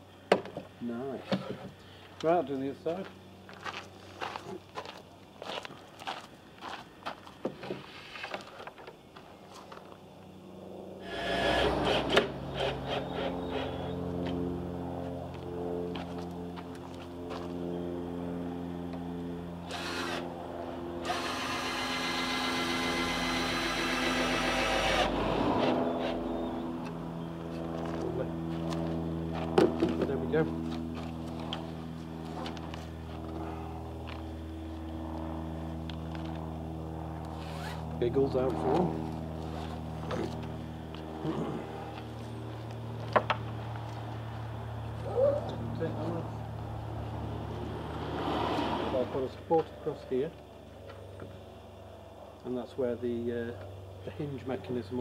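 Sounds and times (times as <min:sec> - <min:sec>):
steady low hum: 0:00.0 - 0:55.0
cordless drill driving screw: 0:19.7 - 0:20.2, 0:21.0 - 0:26.1.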